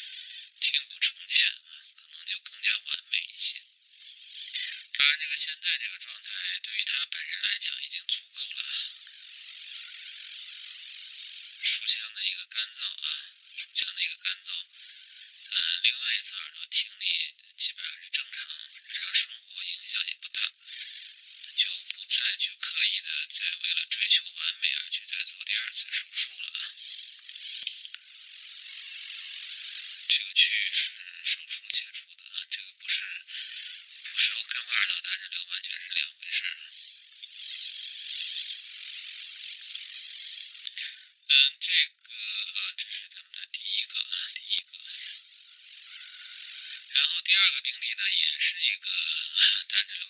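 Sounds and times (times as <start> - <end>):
person talking tinny voice: 0.0 - 9.1, 11.6 - 28.0, 30.1 - 38.6, 39.4 - 45.2, 46.9 - 50.0
steady hiss: 0.0 - 50.0.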